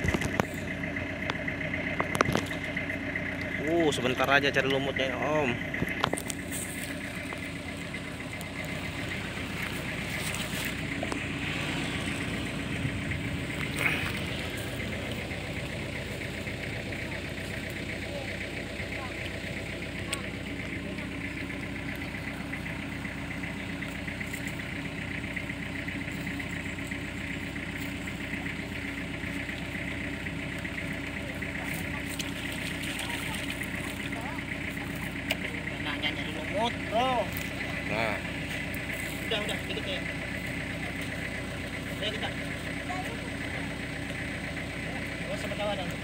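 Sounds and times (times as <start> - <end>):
engine running steadily: 0.0 - 46.0.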